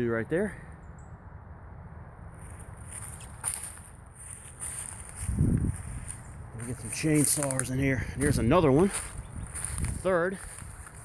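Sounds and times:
footsteps on dry leaves and twigs: 2.3 - 11.0.

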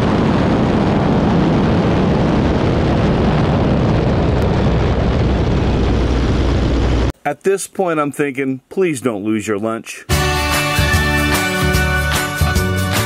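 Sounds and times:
airplane engine droning: 0.0 - 7.1
wind rushing across camera: 0.0 - 7.1.

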